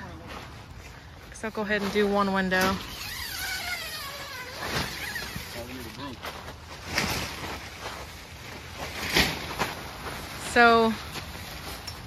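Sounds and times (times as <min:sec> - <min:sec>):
zipper rasping: 0:02.8 - 0:05.6.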